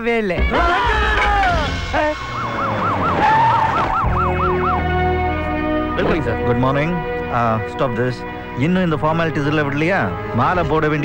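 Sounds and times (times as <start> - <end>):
background music: 0.0 - 11.0
people shouting: 0.5 - 4.0
police siren wailing: 1.2 - 6.5.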